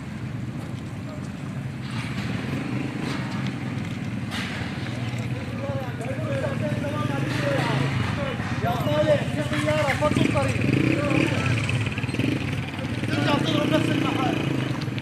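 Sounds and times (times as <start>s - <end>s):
people talking: 4.8s - 15.0s.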